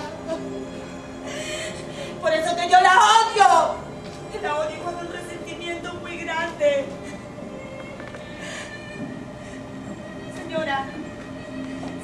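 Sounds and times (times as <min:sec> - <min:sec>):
steady background tones: 0:00.0 - 0:12.0.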